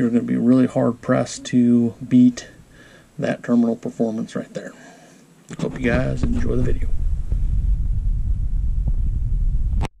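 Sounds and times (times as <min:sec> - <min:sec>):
low background rumble: 0:05.7 - 0:09.9.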